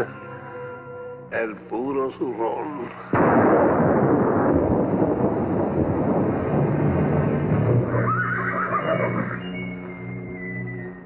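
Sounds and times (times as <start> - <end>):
horse whinnying: 7.9 - 11.0.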